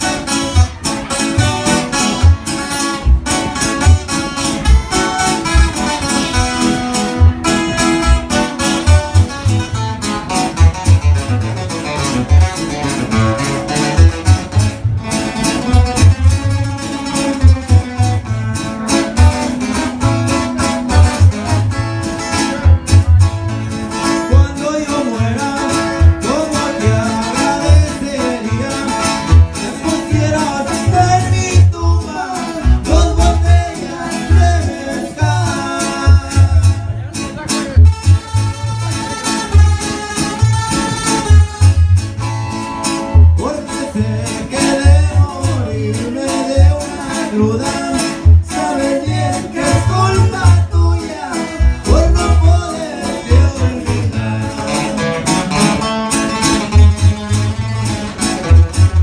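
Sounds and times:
acoustic guitars strumming: 0.0s - 59.0s
plucked bass notes: 0.0s - 59.0s
man singing: 23.8s - 39.8s, 43.0s - 57.2s.

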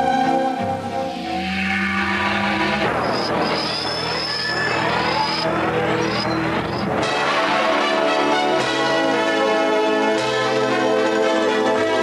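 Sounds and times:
steady high whistle: 3.0s - 6.8s.

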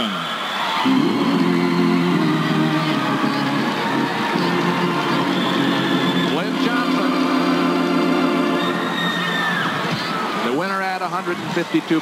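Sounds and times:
crowd applauding: 0.0s - 10.6s
organ playing held chords: 0.8s - 9.5s.

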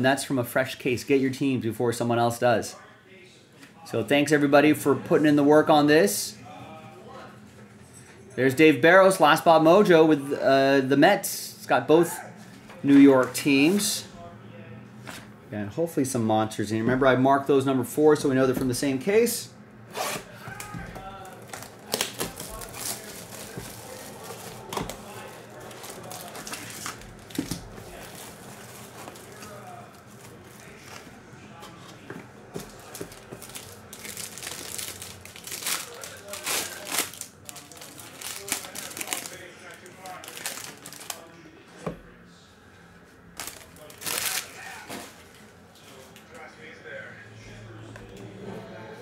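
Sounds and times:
plastic wrapping crinkling and tearing: 20.0s - 31.0s, 32.6s - 41.3s, 43.4s - 45.5s.

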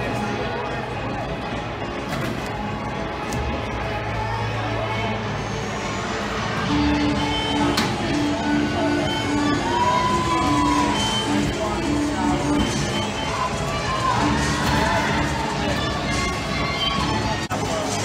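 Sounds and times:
crowd chatter and cheering: 0.0s - 18.0s
music in a large hall: 0.0s - 18.0s
children shouting: 13.4s - 17.2s.

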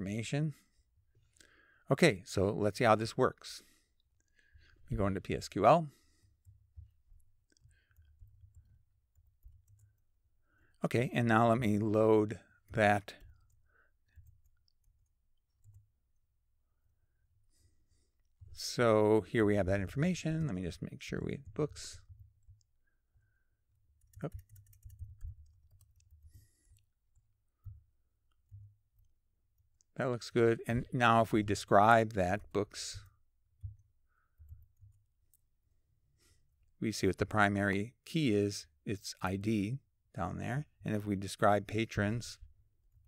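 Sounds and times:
computer keyboard keystrokes: 24.0s - 26.4s.

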